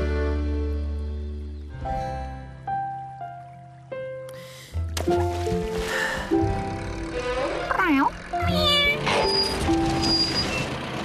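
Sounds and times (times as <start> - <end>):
light background music: 0.0 - 10.5
cartoon cat meowing: 8.4 - 9.0.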